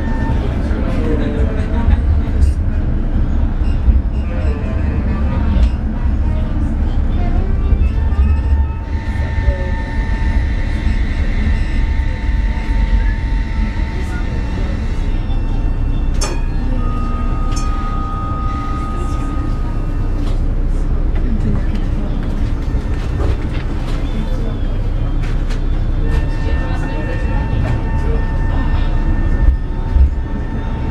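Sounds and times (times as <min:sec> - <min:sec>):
crowd voices: 0:00.0 - 0:30.9
tram rumbling: 0:00.0 - 0:30.9.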